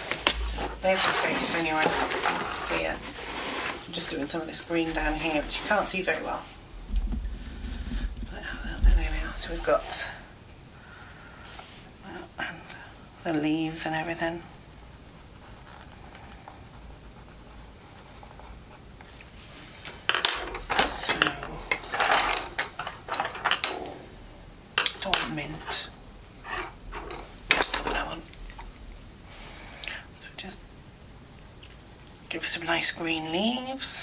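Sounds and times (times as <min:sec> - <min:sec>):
wooden pencils clicking and rattling: 0:00.0 - 0:02.9, 0:19.8 - 0:24.0, 0:24.8 - 0:25.9, 0:26.5 - 0:29.1.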